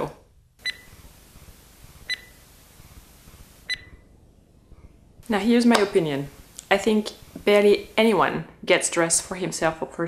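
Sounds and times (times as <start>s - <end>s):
faint background hiss: 0.0s - 10.0s
short electronic beeps: 0.6s - 0.9s, 2.1s - 2.4s, 3.7s - 3.9s.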